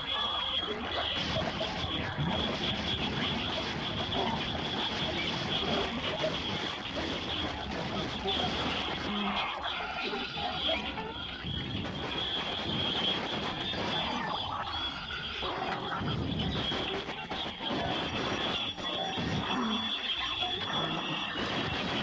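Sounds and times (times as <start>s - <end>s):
indistinct voice-like sounds: 0.0s - 22.0s
thin high whine: 0.0s - 22.0s.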